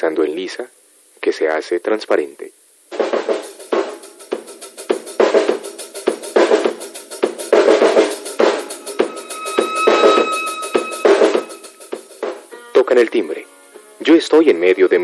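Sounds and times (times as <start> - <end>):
drum kit beat: 2.9 - 12.6
ringing bell-like tone: 8.7 - 11.9.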